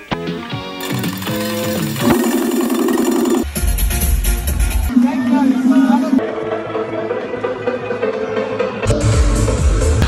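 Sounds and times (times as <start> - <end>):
electronic dance music: 2.0 - 3.5, 4.8 - 6.2.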